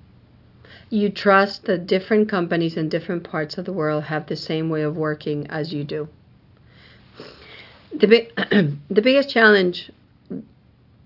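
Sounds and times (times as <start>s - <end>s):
woman speaking: 0.9s - 6.2s, 7.9s - 10.5s
woman breathing in through nose: 6.6s - 7.9s.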